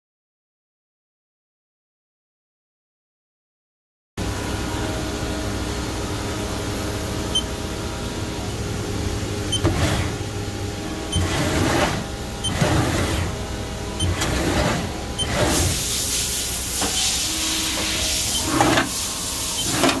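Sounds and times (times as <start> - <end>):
lathe turret whirring: 4.2 - 20.0
machine hum: 4.2 - 20.0.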